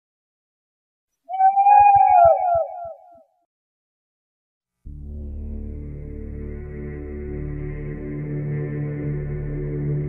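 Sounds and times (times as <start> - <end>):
howling sliding cry: 1.3 - 3.1.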